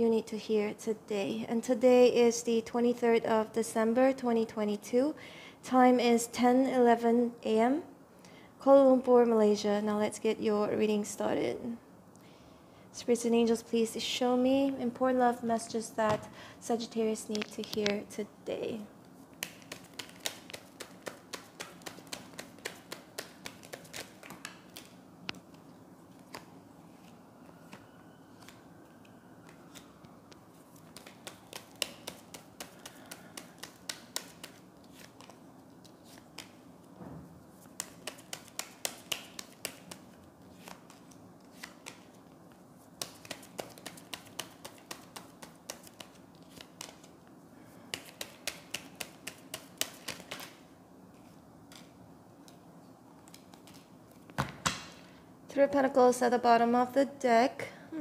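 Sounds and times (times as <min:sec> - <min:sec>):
cards being shuffled: 0:19.1 - 0:27.8, 0:29.4 - 0:36.6, 0:37.5 - 0:47.1, 0:47.9 - 0:52.6, 0:53.2 - 0:54.5
crisp card clicks: 0:30.8 - 0:35.4.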